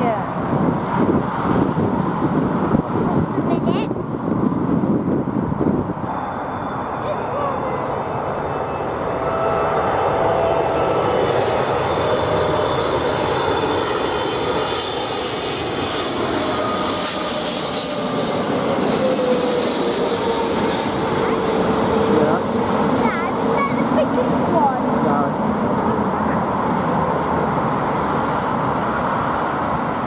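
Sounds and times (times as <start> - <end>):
jet airliner roar: 0.0 - 30.0
jet whine falling in pitch: 6.0 - 22.2.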